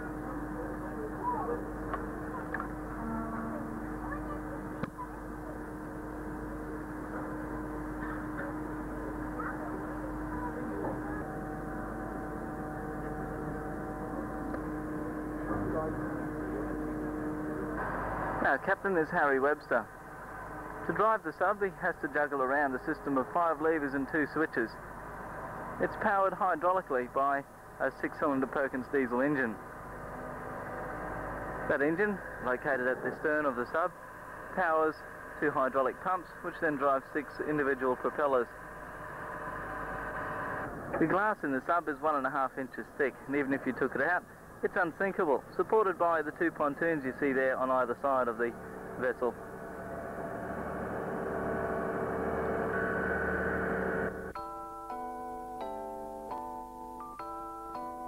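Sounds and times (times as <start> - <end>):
faint murmuring voices: 0.0 - 13.3
engine hum: 0.0 - 57.9.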